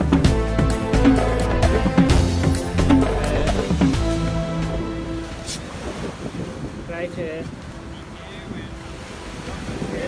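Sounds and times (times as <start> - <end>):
steady music tones: 0.0 - 9.9
surf washing: 2.0 - 10.0
wind rumbling on microphone: 3.3 - 10.0.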